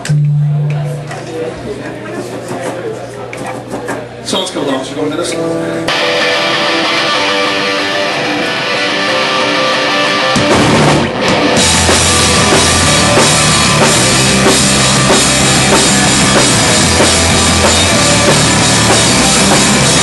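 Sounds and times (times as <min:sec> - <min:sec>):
electric guitar ringing: 0:00.0 - 0:01.6, 0:05.8 - 0:20.0
live rock band playing: 0:05.8 - 0:20.0.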